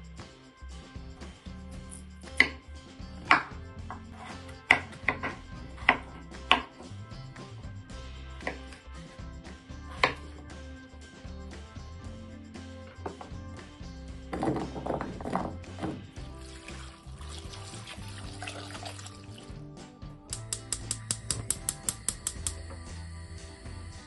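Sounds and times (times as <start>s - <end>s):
quiet background music: 0.0s - 24.0s
knife chopping on wooden board: 3.2s - 6.8s, 8.4s - 8.8s, 9.9s - 10.3s.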